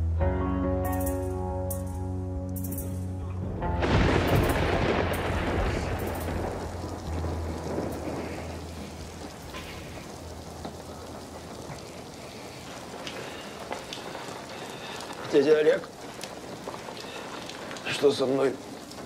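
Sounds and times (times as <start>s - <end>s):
steady rain: 2.6s - 19.0s
thunder clap rolling: 3.4s - 19.0s.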